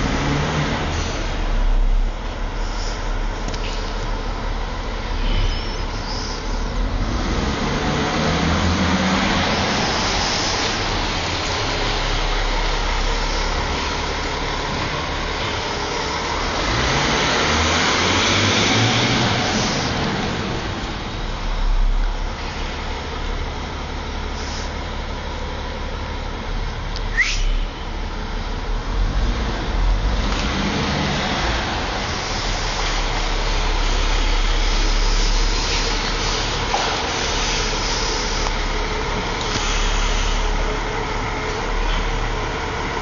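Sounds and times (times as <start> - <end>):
car engine accelerating: 0.0 - 43.0
road noise: 0.0 - 43.0.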